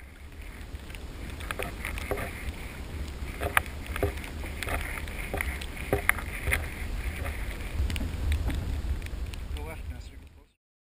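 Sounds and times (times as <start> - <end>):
wind rumble on microphone: 0.0 - 10.5
paddle splashes and knocks: 3.4 - 7.4.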